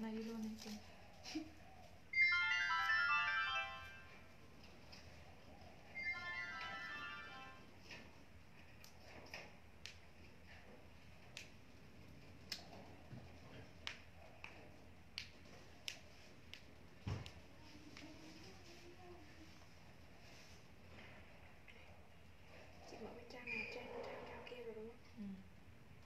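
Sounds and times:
phone ringtone jingle: 0:02.1 - 0:04.3, 0:05.9 - 0:07.8.

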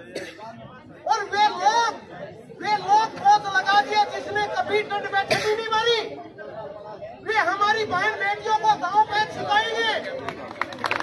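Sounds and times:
man speaking into a microphone: 0:00.0 - 0:06.2, 0:07.0 - 0:10.2.

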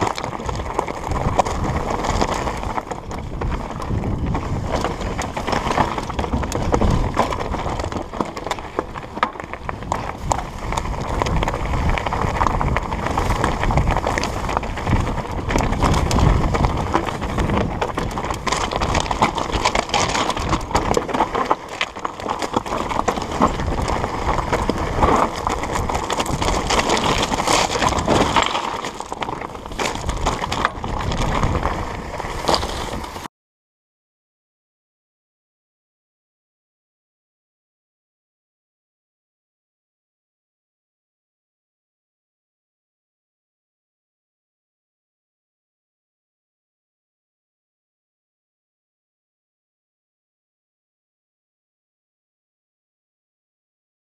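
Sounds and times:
bike clattering and rattling: 0:00.0 - 0:33.3
tyres crunching over loose stones: 0:00.0 - 0:33.3.

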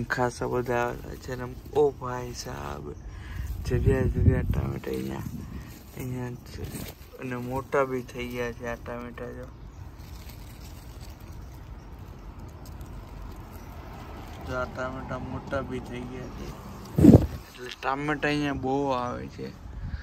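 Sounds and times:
outdoor background noise: 0:00.0 - 0:20.0
microphone rumble: 0:02.9 - 0:07.8, 0:16.2 - 0:17.6
person talking: 0:03.6 - 0:09.5, 0:14.4 - 0:16.6.

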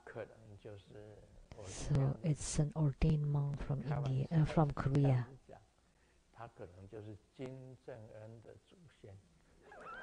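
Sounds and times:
man speaking: 0:00.0 - 0:02.2, 0:03.8 - 0:09.3.

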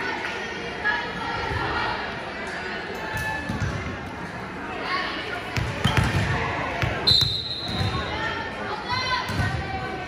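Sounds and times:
referee's whistle: 0:07.0 - 0:08.0.

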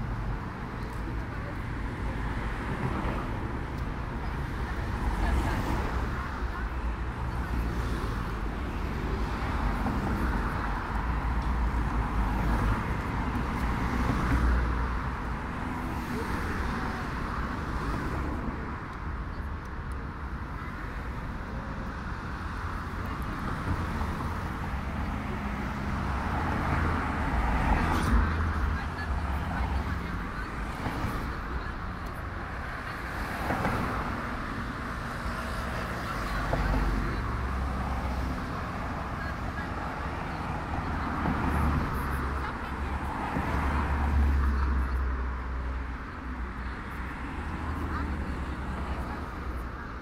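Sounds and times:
cars driving past: 0:20.0 - 0:50.0.

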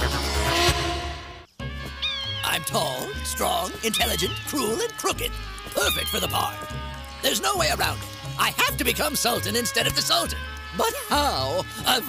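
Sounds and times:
cartoon background music: 0:00.0 - 0:12.0
bending voice-like cries: 0:02.0 - 0:07.6.

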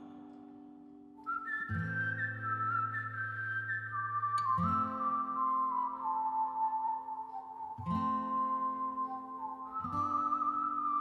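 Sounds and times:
whistled melody: 0:01.1 - 0:11.0.

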